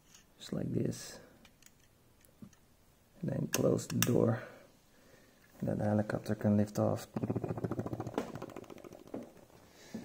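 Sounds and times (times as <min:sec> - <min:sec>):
person imitating helicopter rotor: 0:07.2 - 0:09.0.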